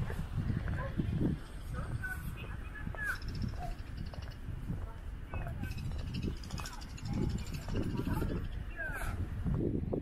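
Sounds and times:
wind rumble: 0.0s - 10.0s.

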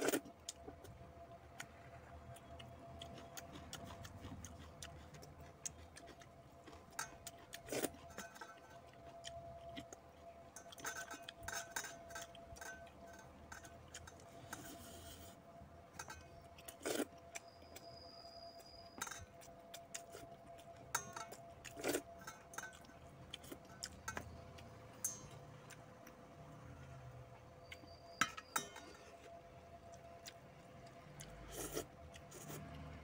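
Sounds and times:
faint steady tone: 0.0s - 33.0s
fingers scraping steel bowls: 10.6s - 19.5s, 27.7s - 29.4s
metallic clinks: 20.9s - 25.7s, 27.6s - 29.3s.

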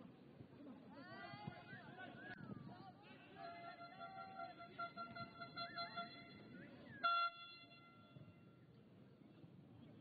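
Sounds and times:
faint crowd murmur: 0.0s - 7.2s.

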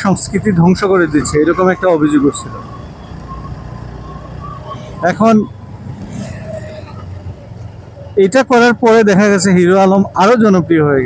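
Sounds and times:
traffic noise: 0.0s - 11.0s.

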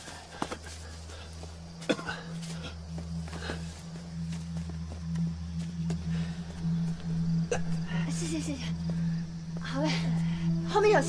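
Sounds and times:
scuffs and rustles of people clambering: 0.0s - 10.6s
low droning rumble: 1.2s - 11.0s.

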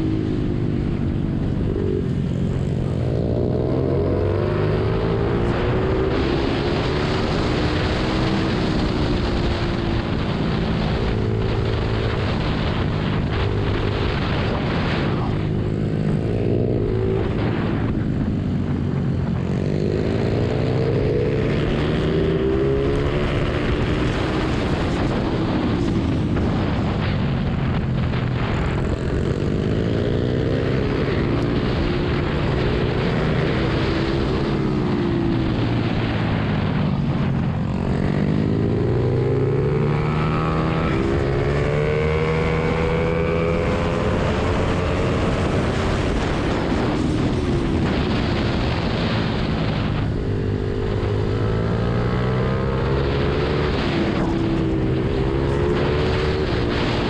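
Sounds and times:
motorbike engine revving: 0.0s - 57.0s
wind rush: 0.0s - 57.0s.

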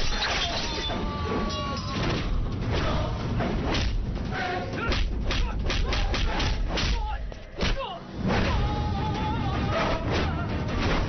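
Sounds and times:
background music: 0.0s - 11.0s
people shouting: 0.2s - 3.2s, 4.3s - 11.0s.

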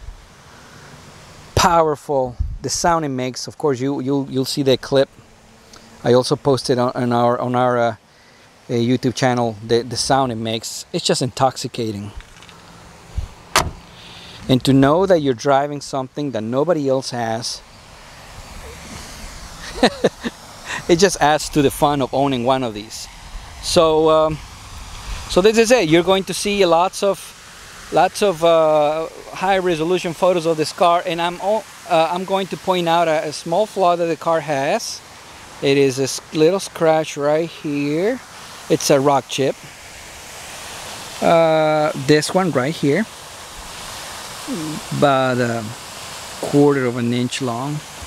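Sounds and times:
outdoor background hiss: 0.0s - 48.0s
man speaking: 1.6s - 5.1s, 6.0s - 8.0s, 8.7s - 12.2s, 14.0s - 17.6s, 18.6s - 24.4s, 25.3s - 27.3s, 27.9s - 35.0s, 35.6s - 39.6s, 41.2s - 43.1s, 44.5s - 45.8s, 46.4s - 47.8s
person saying uh: 18.6s - 22.9s, 44.5s - 45.7s.

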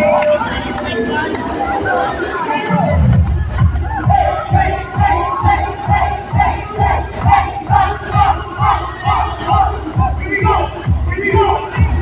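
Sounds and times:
loud dance music: 0.0s - 12.0s
party crowd shouting: 0.0s - 12.0s.

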